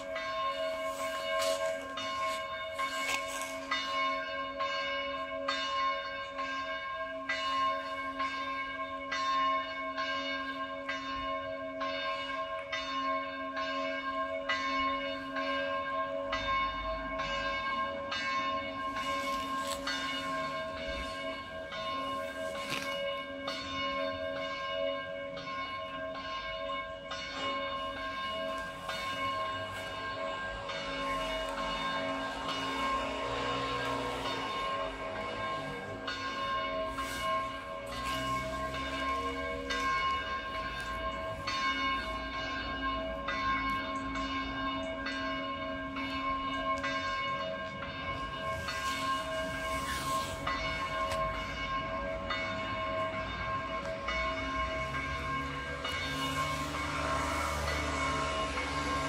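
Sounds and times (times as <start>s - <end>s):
church bells ringing: 0.0s - 59.0s.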